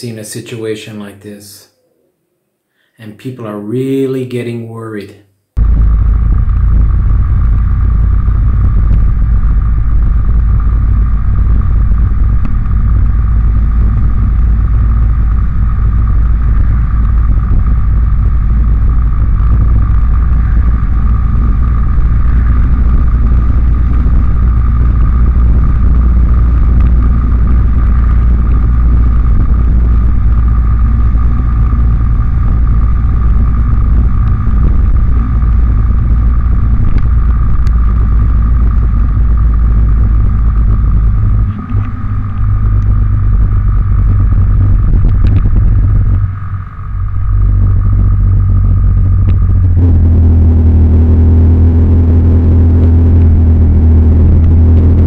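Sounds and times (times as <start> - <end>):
motorbike engine running: 5.6 - 55.0
wind noise on microphone: 5.6 - 55.0.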